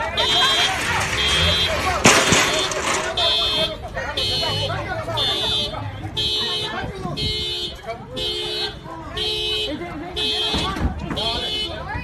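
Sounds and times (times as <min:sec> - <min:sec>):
people talking: 0:00.0 - 0:12.0
loud sharp bang: 0:00.6 - 0:03.4.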